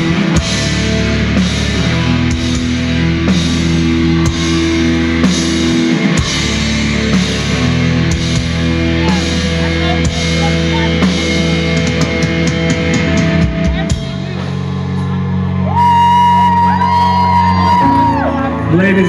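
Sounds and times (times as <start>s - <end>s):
drum kit with cymbals: 0.0s - 15.4s
bass guitar chords: 0.0s - 19.0s
distorted electric guitars: 0.0s - 19.0s.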